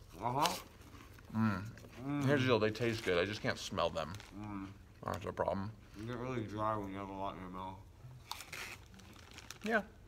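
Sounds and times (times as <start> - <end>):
snack bag crinkling: 8.3 - 10.0.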